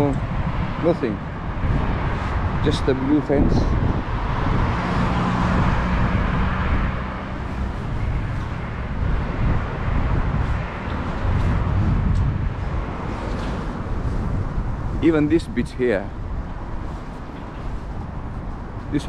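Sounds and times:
road traffic rumble: 0:00.0 - 0:19.0.

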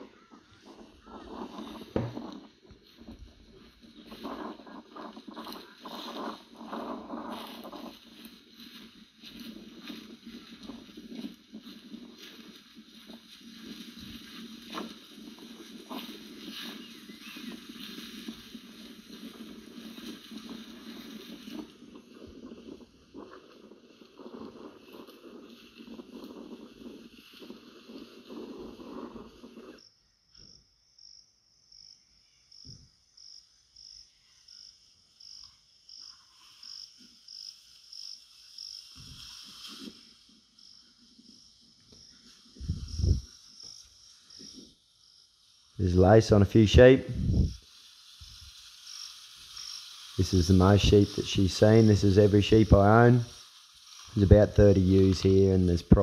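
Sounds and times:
hoof clicks: 0:00.0 - 0:29.8, 0:45.7 - 0:56.0
cattle rustling through dry grass: 0:00.1 - 0:29.8, 0:36.0 - 0:56.0.

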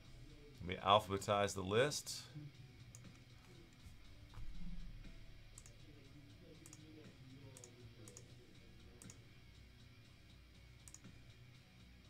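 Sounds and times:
computer mouse clicking: 0:05.6 - 0:05.8, 0:06.6 - 0:06.9, 0:07.5 - 0:08.3, 0:09.0 - 0:09.2, 0:10.8 - 0:11.1.

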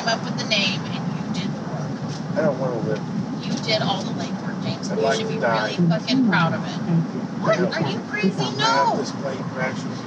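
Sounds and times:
road and engine noise inside car: 0:00.0 - 0:10.0
person speaking: 0:03.5 - 0:09.1.

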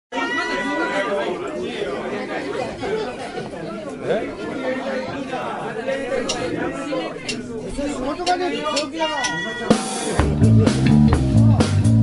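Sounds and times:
people talking at once: 0:00.1 - 0:12.0.

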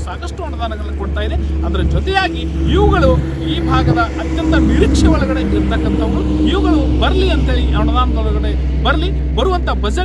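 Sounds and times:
man speaking: 0:00.0 - 0:10.0
steady low rumble: 0:00.0 - 0:10.0.

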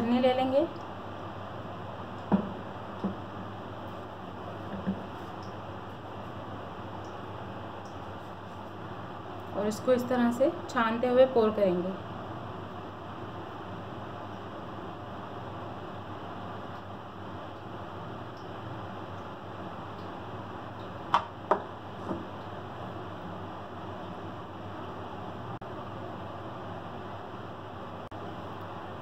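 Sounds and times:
low background hum: 0:00.0 - 0:29.0.

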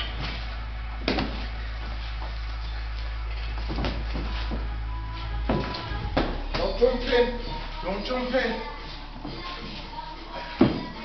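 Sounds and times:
steady low hum: 0:00.0 - 0:11.0
boxing gloves smacking: 0:01.0 - 0:01.4.

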